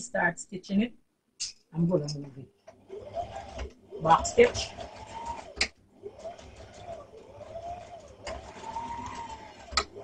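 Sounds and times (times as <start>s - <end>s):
sewing machine motor whine: 2.7s - 10.0s.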